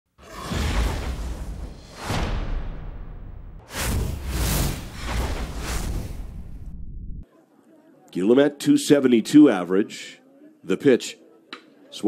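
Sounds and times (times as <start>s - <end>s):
sweeping swooshes: 0.2s - 7.2s
low bass rumble: 2.8s - 7.2s.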